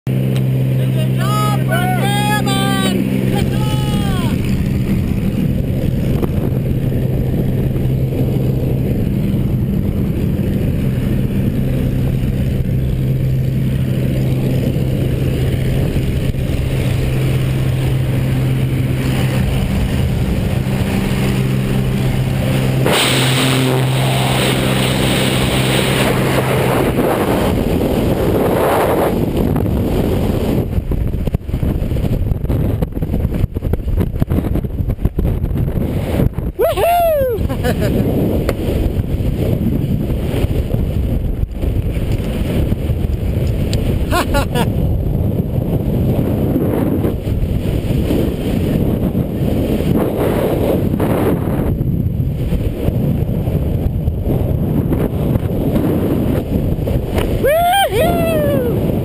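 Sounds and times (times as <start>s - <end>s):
plane engine droning: 0.1s - 34.2s
wind: 0.1s - 59.0s
voices: 0.8s - 4.4s
rush of air: 3.0s - 59.0s.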